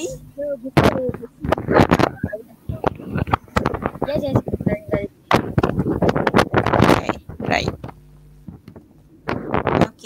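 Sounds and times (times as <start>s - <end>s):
microphone handling bumps: 0.8s - 10.0s.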